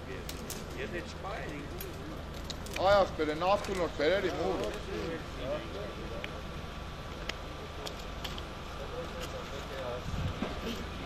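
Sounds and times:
people talking: 0:00.0 - 0:11.0.

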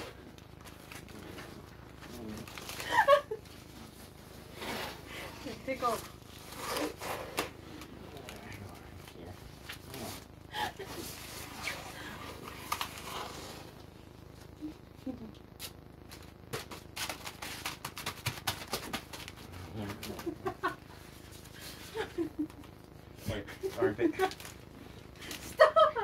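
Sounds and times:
plastic bag and tape rustling: 0:00.0 - 0:14.6, 0:15.6 - 0:25.8.

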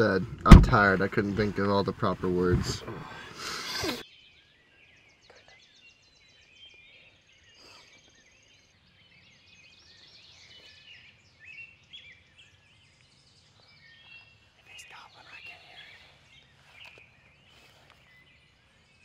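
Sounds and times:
songbirds chirping and whistling: 0:00.0 - 0:19.0.

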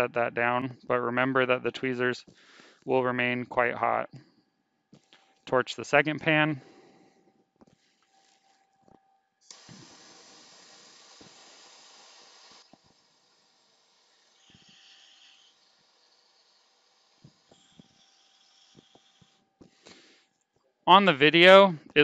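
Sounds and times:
gas torch hissing: 0:09.4 - 0:20.0.

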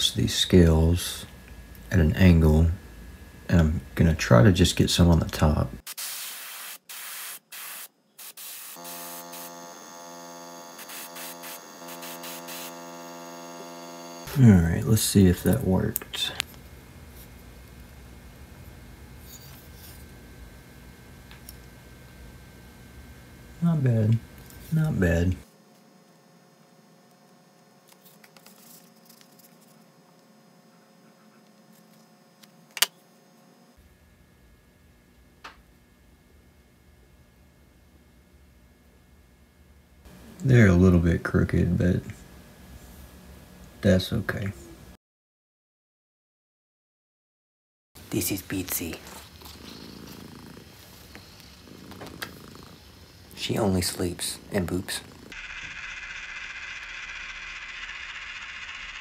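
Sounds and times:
steady low hum: 0:00.0 - 0:05.8, 0:09.3 - 0:45.0
airbrush spraying in hissing bursts: 0:05.9 - 0:09.6, 0:10.8 - 0:12.8.

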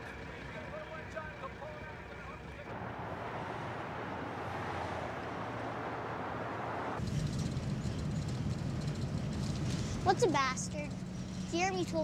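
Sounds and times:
passing traffic: 0:00.0 - 0:12.0
van engine rumble: 0:07.0 - 0:12.0.

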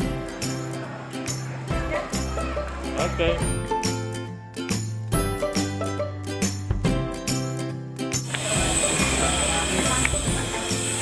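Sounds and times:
outdoor crowd hubbub: 0:00.0 - 0:06.1, 0:08.2 - 0:11.0.

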